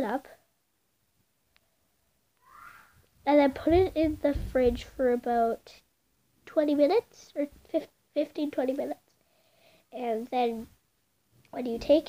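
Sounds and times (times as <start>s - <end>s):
faint high squeak: 2.4s - 3.0s.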